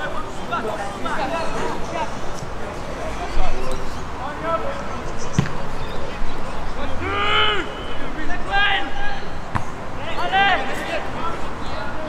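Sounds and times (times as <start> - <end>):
players shouting: 0.0 - 12.0
football being kicked: 9.5 - 9.8.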